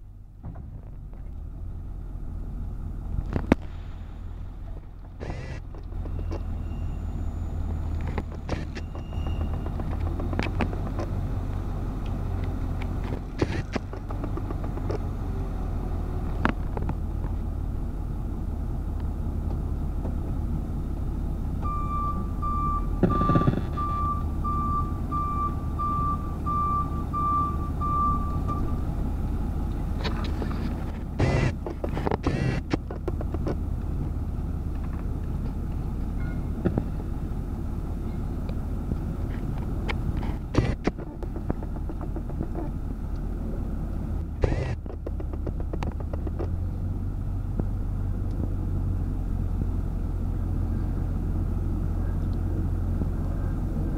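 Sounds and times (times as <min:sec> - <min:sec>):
diesel engine droning: 0:00.0 - 0:53.9
reversing alarm beeping: 0:06.2 - 0:07.6, 0:21.6 - 0:28.8
scattered knocks: 0:08.8 - 0:11.1, 0:40.6 - 0:42.6.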